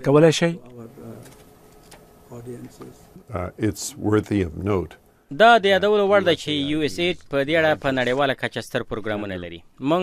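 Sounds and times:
man speaking: 0:02.3 - 0:10.0.

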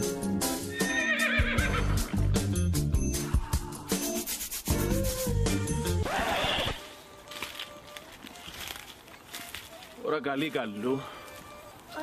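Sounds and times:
background music with beat: 0:00.0 - 0:06.0.

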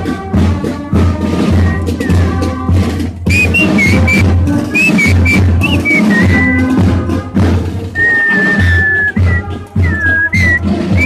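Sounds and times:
marching drumbeat: 0:00.0 - 0:11.0
shrill fife melody: 0:01.4 - 0:07.1, 0:08.0 - 0:11.0.

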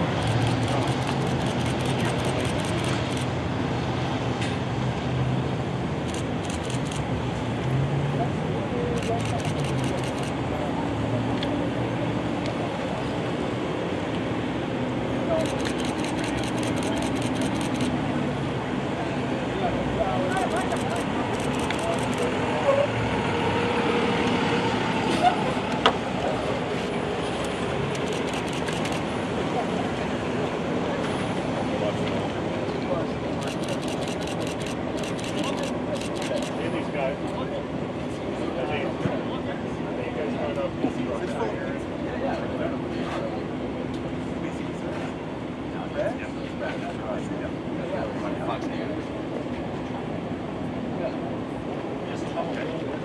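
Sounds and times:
vehicles driving past slowly: 0:00.0 - 0:53.0.

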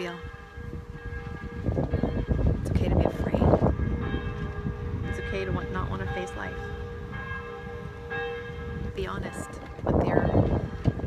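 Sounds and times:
church bells ringing: 0:00.0 - 0:11.0.

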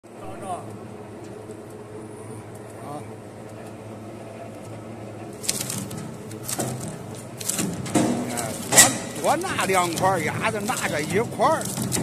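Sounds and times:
shredder motor and gearbox hum: 0:04.5 - 0:12.0
metal cracking and crunching: 0:05.3 - 0:12.0.

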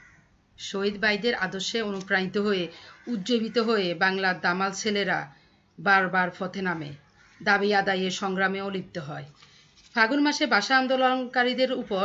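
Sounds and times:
woman speaking: 0:00.6 - 0:12.0.

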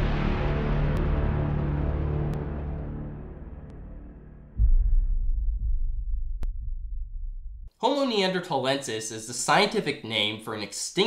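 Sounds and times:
deep sub-bass boom: 0:00.0 - 0:07.7.

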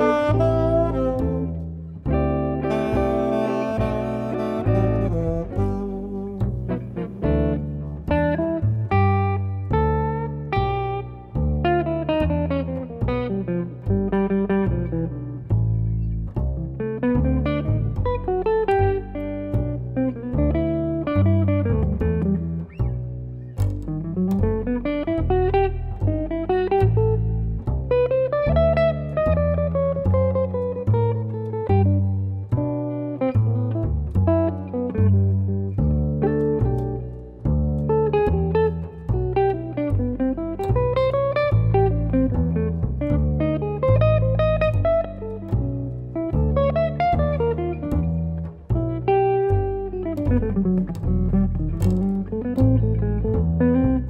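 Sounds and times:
electric jazz guitar lines: 0:00.0 - 0:54.0
plucked double bass walking: 0:00.0 - 0:54.0.

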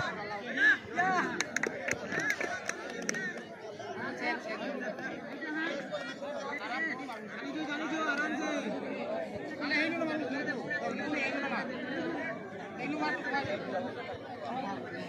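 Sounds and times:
crowd chattering: 0:00.0 - 0:15.0.

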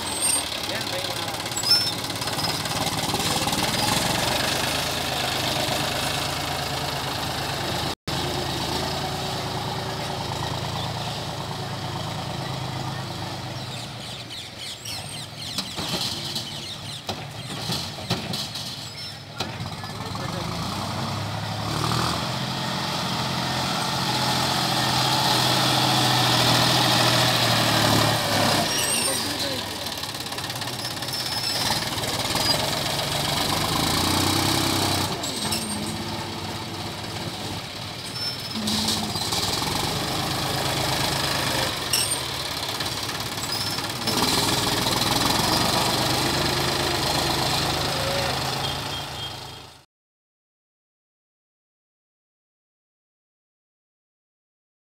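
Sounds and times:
tractor diesel engine revving: 0:00.0 - 0:49.8.

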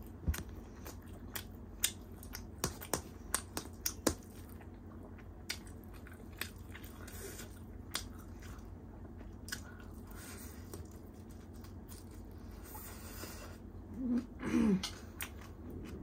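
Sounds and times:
person chewing food: 0:00.0 - 0:16.0.

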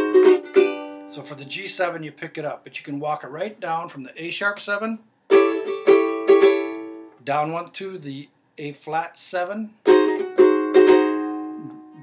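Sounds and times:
ukulele chord strums: 0:00.0 - 0:02.1, 0:05.3 - 0:07.2, 0:09.8 - 0:12.0.

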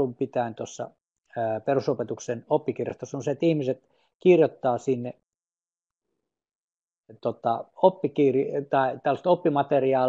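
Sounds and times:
man speaking: 0:00.0 - 0:05.2, 0:07.1 - 0:10.0.

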